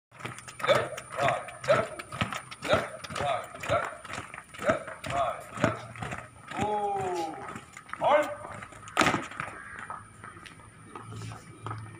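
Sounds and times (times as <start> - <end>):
footsteps marching on paving: 0.1 - 11.9
person shouting marching cadence: 0.2 - 9.5.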